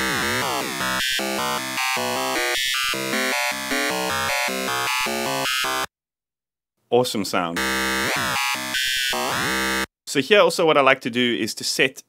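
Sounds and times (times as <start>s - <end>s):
gritty buzzing synth lead: 0.0s - 5.9s, 7.6s - 9.9s.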